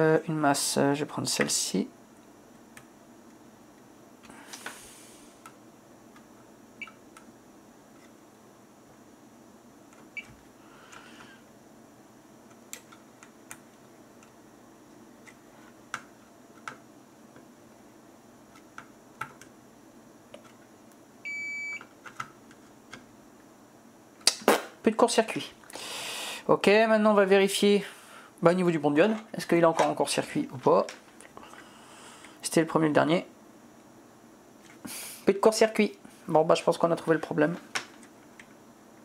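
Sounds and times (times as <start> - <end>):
multimeter beep: 21.2 - 21.8.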